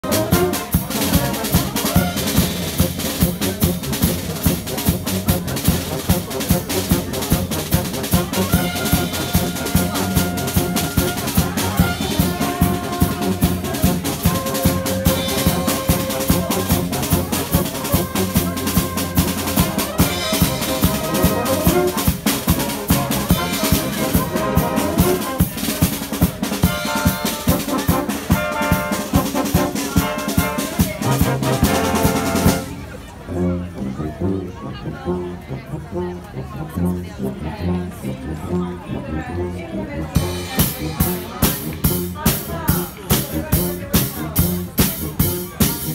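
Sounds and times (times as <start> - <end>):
brass band with drum kit: 0.0 - 45.9.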